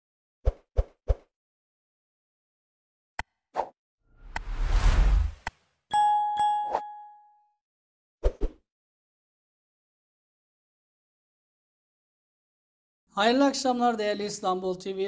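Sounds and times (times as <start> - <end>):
whoosh with low rumble: 4.2 - 5.5
bell-like ding: 5.9 - 7.5.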